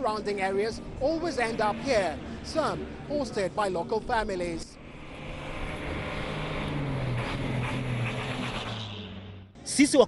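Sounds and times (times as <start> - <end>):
heavy truck engine passing: 0.0 - 9.6
tyre and road noise: 0.0 - 9.8.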